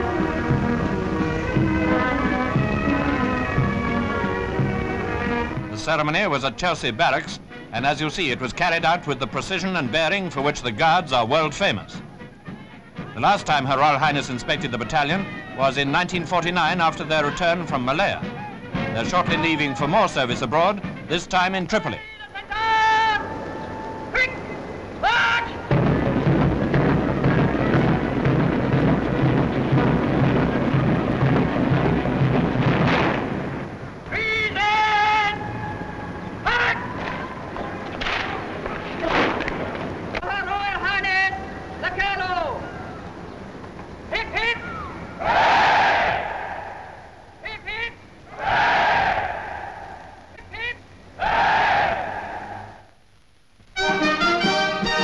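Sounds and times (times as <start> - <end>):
drill commands shouted: 34.1 - 35.7
crowd shouting hooray: 44.6 - 46.9, 48.3 - 50.1, 51.2 - 52.7.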